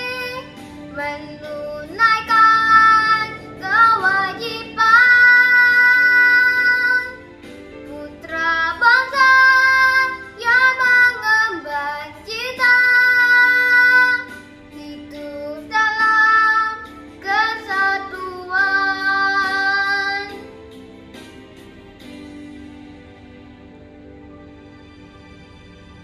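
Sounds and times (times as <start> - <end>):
girl singing: 0.0 - 20.6
soft instrumental backing track: 0.0 - 26.0.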